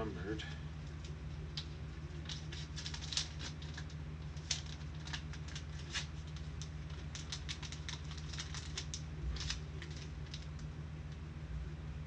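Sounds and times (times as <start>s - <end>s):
low electrical hum: 0.0s - 12.0s
small objects clicking and crinkling: 0.8s - 10.7s.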